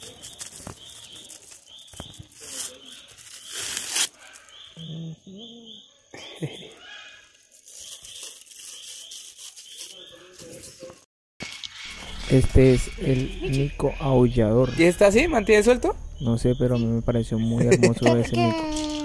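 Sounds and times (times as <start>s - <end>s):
plastic bag crinkling and tearing: 0.0s - 4.6s, 7.3s - 10.4s.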